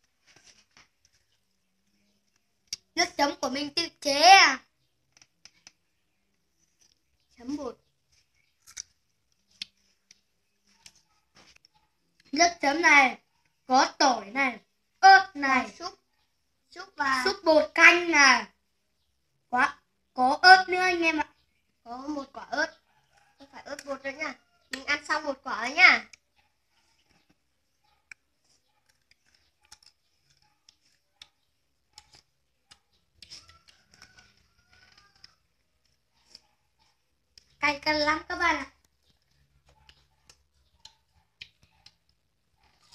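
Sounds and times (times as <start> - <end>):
crisp clicks of biting apricots: 2.3 - 2.9, 8.2 - 12.3, 28.0 - 36.6.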